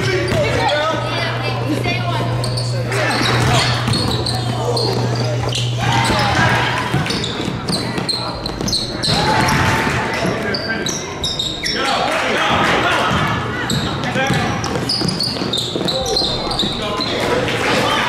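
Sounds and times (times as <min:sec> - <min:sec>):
voices in a hall: 0:00.0 - 0:18.0
basketball bouncing on hardwood floor: 0:03.4 - 0:05.2, 0:06.0 - 0:10.4, 0:13.1 - 0:16.8.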